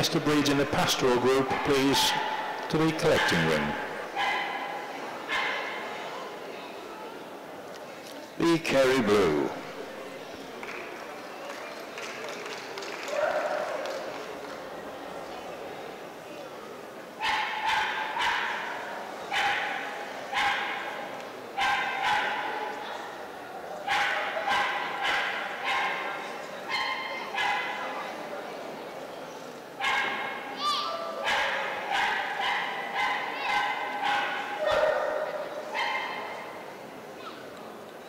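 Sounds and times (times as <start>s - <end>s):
dog barking: 1.5s - 4.7s, 17.2s - 20.8s, 21.6s - 22.6s, 23.9s - 26.1s, 26.7s - 27.8s, 29.8s - 30.3s, 31.2s - 36.2s.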